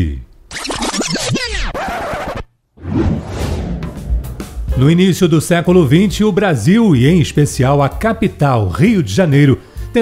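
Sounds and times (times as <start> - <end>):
record scratch rewind effect: 0.5 - 4.8.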